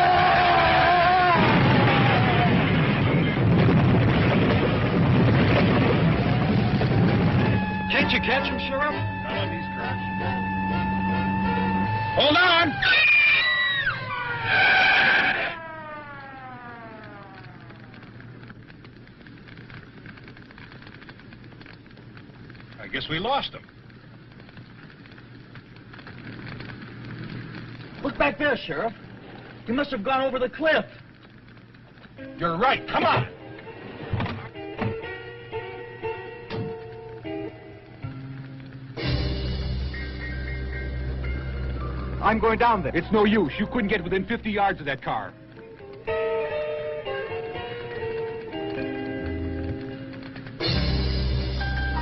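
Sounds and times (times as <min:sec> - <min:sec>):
person screaming: 0:00.0 - 0:02.6, 0:12.2 - 0:15.6
car crash and explosion: 0:00.0 - 0:08.7.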